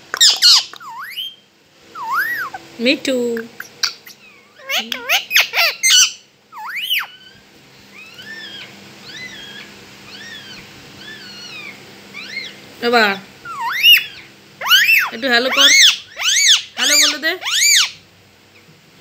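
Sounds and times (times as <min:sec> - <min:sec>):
parakeet chirping: 0:00.0 - 0:18.6
parakeet rising call: 0:00.1 - 0:01.4, 0:02.0 - 0:02.7, 0:03.6 - 0:12.6, 0:13.5 - 0:18.0
parakeet squawk: 0:00.1 - 0:01.4, 0:02.0 - 0:02.7, 0:03.4 - 0:12.6, 0:13.4 - 0:18.0.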